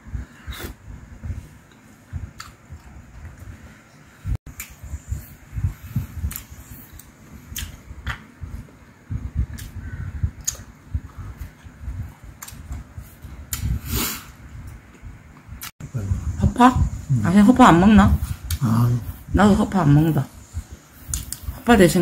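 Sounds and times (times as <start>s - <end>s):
man chewing: 1.6s - 3.5s, 6.0s - 8.8s, 9.5s - 9.8s, 10.4s - 15.7s
sharp mouth clicks: 6.2s - 8.2s, 10.4s - 10.7s, 21.1s - 21.5s.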